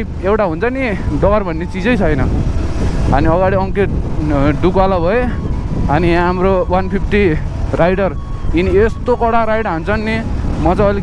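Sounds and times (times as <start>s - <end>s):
person talking: 0.0s - 2.4s
motorcycle engine rumble: 0.0s - 11.0s.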